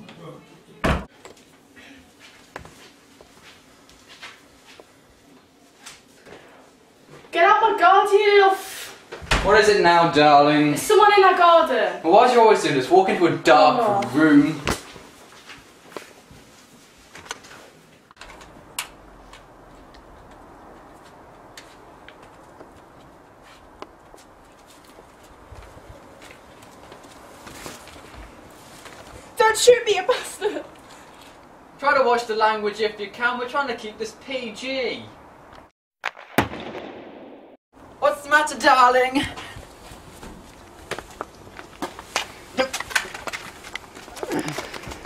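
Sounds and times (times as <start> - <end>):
low outdoor background: 0.0 - 45.0
gunshot with echo: 36.0 - 37.6.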